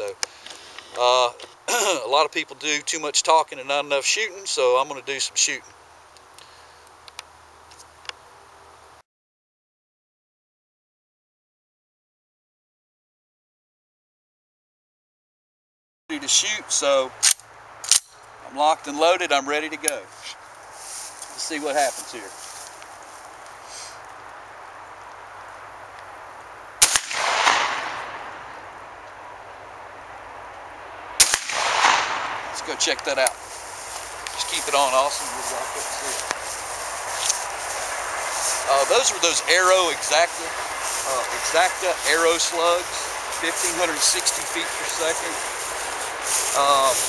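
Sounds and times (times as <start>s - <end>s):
faint outdoor background: 0.0s - 9.0s, 16.1s - 47.0s
small sharp clicks: 17.2s - 18.2s
shotgun shot with echo: 26.8s - 28.3s, 31.2s - 32.6s.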